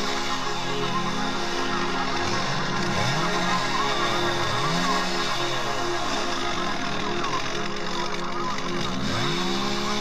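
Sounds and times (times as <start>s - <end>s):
chainsaw cutting log: 0.0s - 10.0s
music playing: 0.0s - 10.0s.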